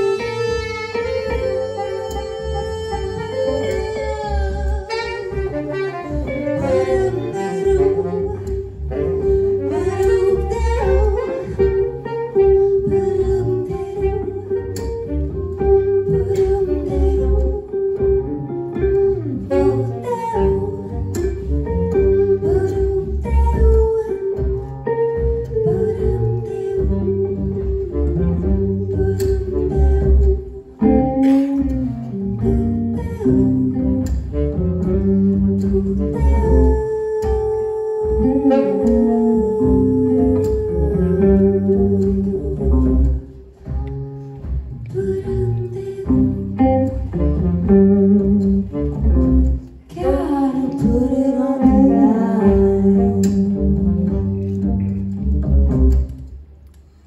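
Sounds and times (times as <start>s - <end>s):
electric guitar: 0.0s - 57.0s
jazz band playing: 0.0s - 57.0s.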